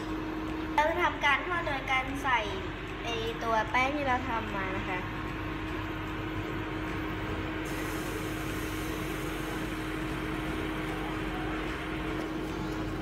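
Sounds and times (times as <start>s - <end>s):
machine hum: 0.0s - 13.0s.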